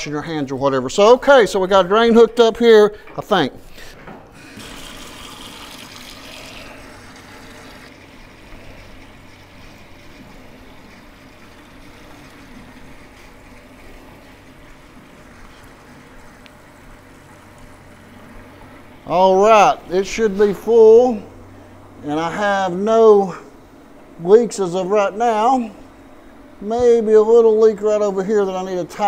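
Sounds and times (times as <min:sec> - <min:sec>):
faucet water splashing into sink: 0:04.4 - 0:16.4.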